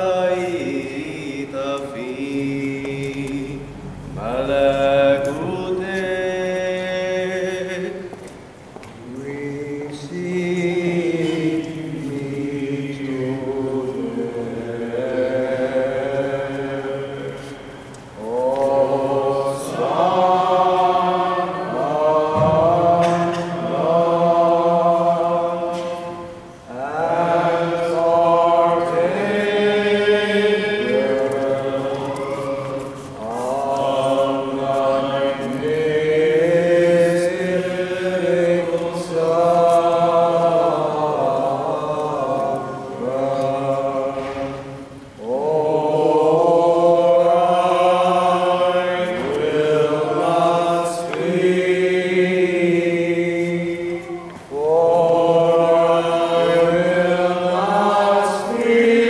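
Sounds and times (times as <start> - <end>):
voices singing chant: 0.0 - 8.3, 9.0 - 59.0.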